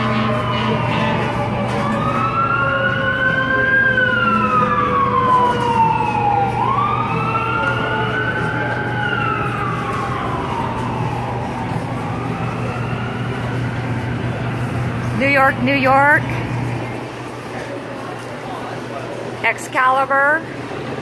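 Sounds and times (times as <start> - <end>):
emergency vehicle siren wailing: 0.0 - 18.1
street traffic hum: 0.0 - 21.0.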